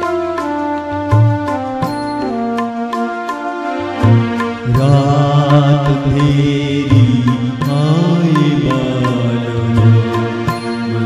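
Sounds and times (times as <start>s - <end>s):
man singing: 4.6s - 11.0s.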